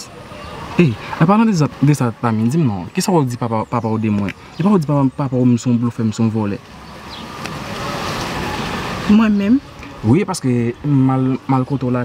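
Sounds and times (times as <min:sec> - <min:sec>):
road vehicle passing: 0:00.0 - 0:12.0.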